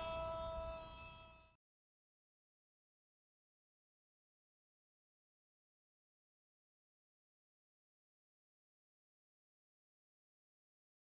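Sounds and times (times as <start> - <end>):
air horn note: 0.0 - 1.5.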